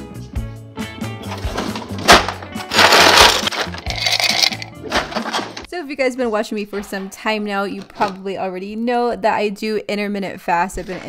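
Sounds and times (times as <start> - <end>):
background music: 0.0 - 8.4
freezer drawer sliding and rattling: 1.2 - 3.8, 4.8 - 5.7.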